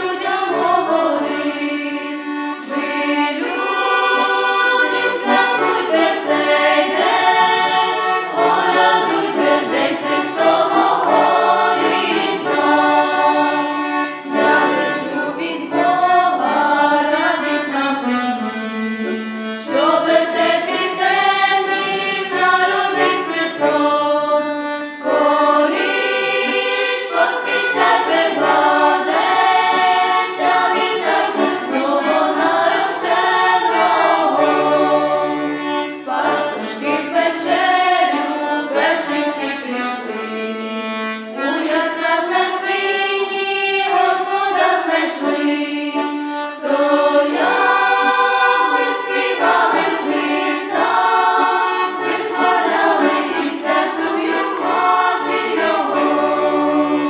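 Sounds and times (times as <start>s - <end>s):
accordion: 0.0s - 57.0s
choir singing a carol: 0.0s - 57.0s.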